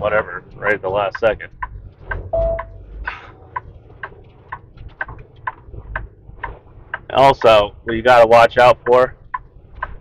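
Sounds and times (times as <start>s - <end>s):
truck engine rumble: 0.0s - 10.0s
turn signal clicking: 1.1s - 7.6s, 8.8s - 10.0s.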